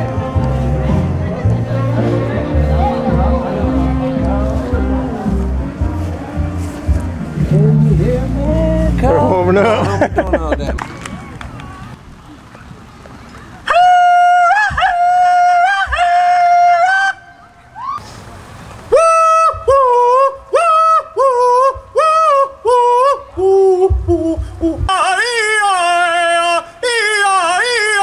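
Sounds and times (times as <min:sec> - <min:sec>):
man yodel-like hollering: 0:13.7 - 0:18.0, 0:18.9 - 0:28.0.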